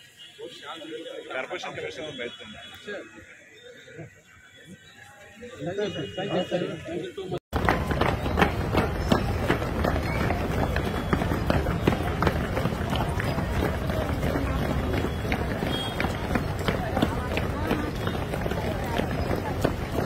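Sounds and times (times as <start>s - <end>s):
voices: 0.0s - 20.0s
boots jogging on pavement: 7.5s - 20.0s.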